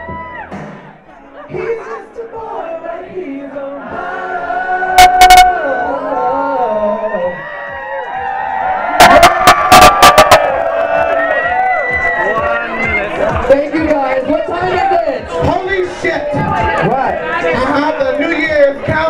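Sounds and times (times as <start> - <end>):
crowd noise: 0.0 - 19.0
people singing together: 1.5 - 7.4.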